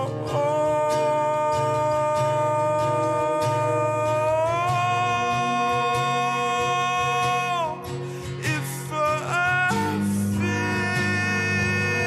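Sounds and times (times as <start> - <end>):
guitar: 0.0 - 12.0.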